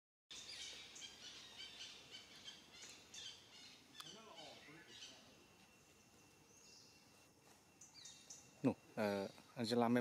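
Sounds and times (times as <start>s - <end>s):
small birds chirping: 0.3s - 10.0s.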